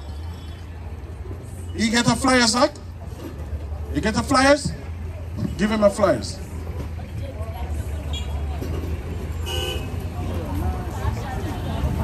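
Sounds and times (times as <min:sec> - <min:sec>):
faint voices: 0:00.0 - 0:12.0
street rumble: 0:00.0 - 0:12.0
vehicle horn toot: 0:09.4 - 0:10.0.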